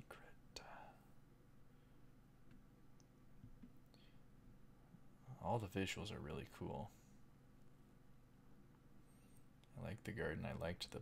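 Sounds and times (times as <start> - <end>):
man whispering: 0.0 - 1.2.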